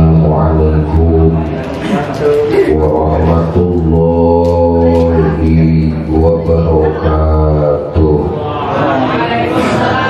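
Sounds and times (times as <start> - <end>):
man chanting prayer into microphone: 0.0 - 8.4.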